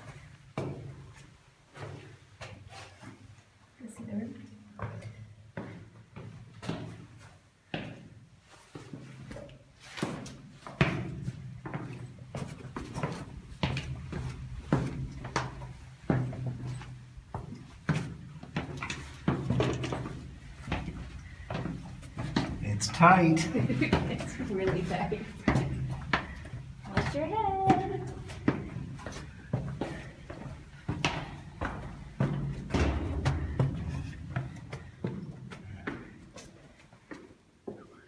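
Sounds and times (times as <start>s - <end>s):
footsteps on stone: 4.7s - 37.8s.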